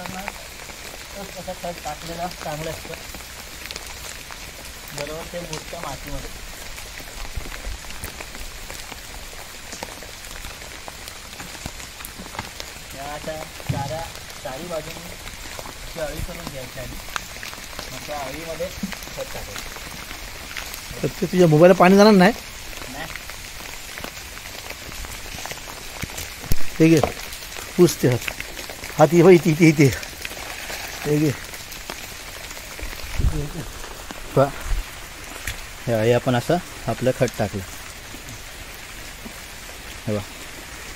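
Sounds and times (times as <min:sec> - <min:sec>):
raindrops ticking: 0:00.0 - 0:40.9
steady rain falling: 0:00.0 - 0:40.9.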